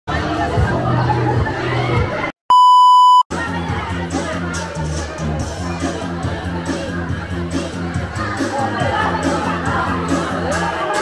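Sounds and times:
music: 0:00.1 - 0:02.3, 0:03.3 - 0:11.0
crowd noise: 0:00.1 - 0:11.0
high-pitched electronic beep: 0:02.5 - 0:03.3.

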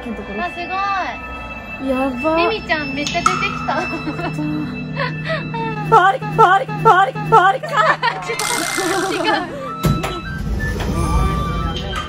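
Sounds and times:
background music steady tones: 0:00.0 - 0:12.0.

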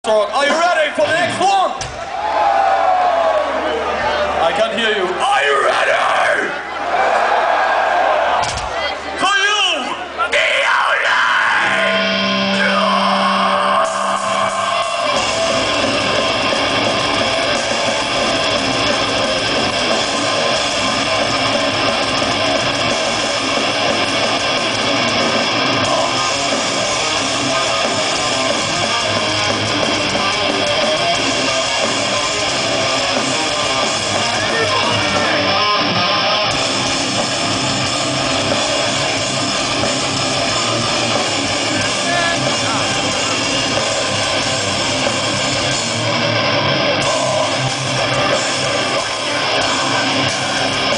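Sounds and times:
drums: 0:00.0 - 0:50.9
distorted electric guitars: 0:10.3 - 0:50.9.

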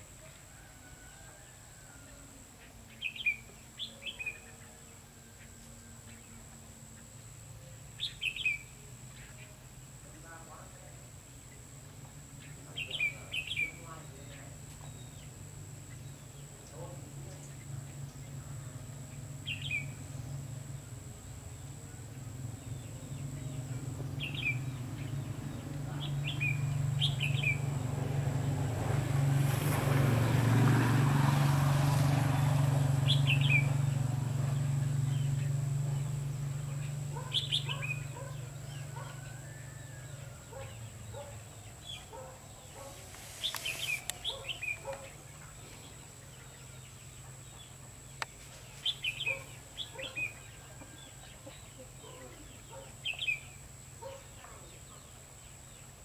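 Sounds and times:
birds chirping: 0:00.0 - 0:29.0, 0:30.2 - 0:56.0.

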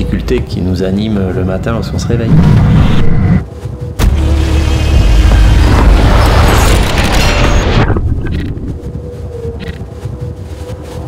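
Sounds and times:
loud rush with low rumble: 0:01.4 - 0:11.0
deep boom: 0:04.0 - 0:08.1.

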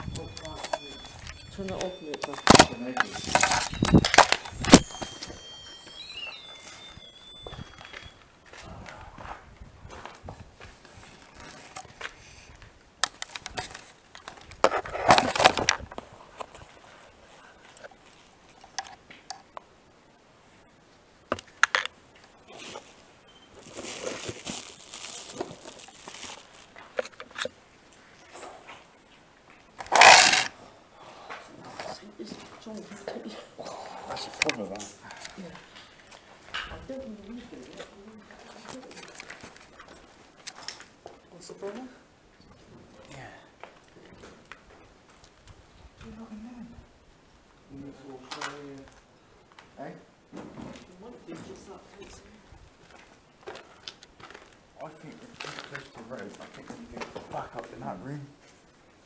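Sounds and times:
high-pitched electronic whine: 0:00.0 - 0:59.0.

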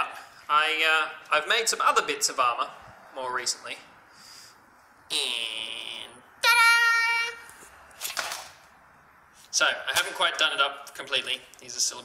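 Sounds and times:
breathy exhale: 0:04.1 - 0:04.7.

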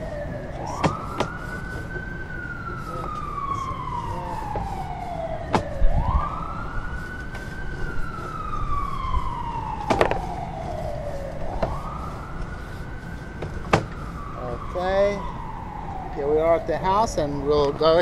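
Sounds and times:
steady low rumble: 0:00.0 - 0:14.8
emergency vehicle siren wailing: 0:00.0 - 0:18.0.

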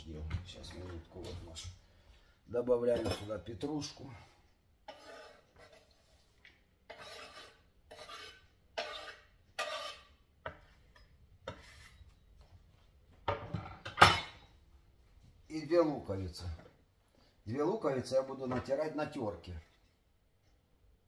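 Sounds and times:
knife scraping wooden cutting board: 0:04.9 - 0:06.3, 0:06.9 - 0:10.8, 0:11.4 - 0:12.1.

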